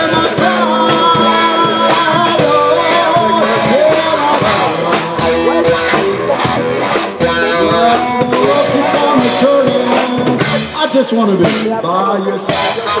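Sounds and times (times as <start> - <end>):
electric guitar bending sliding lines: 0.0 - 10.8
upright double bass: 0.0 - 10.8
drum kit: 0.0 - 13.0.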